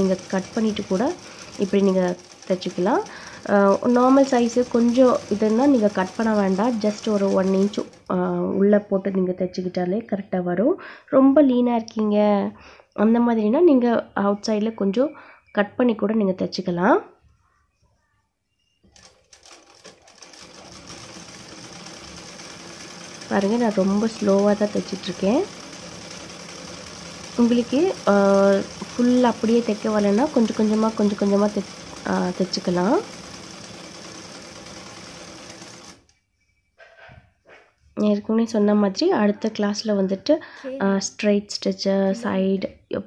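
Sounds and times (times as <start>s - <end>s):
sewing machine clicks: 0.0s - 8.1s, 18.9s - 36.1s
sewing machine stitching: 0.0s - 8.2s, 18.9s - 36.1s.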